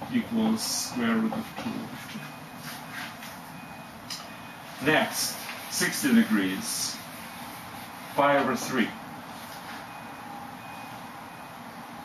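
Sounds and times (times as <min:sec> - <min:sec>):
low room hiss: 0:04.0 - 0:12.0.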